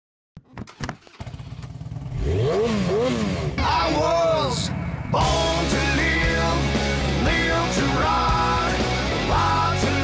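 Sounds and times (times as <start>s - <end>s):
motorcycle engine revving: 0.5s - 10.0s.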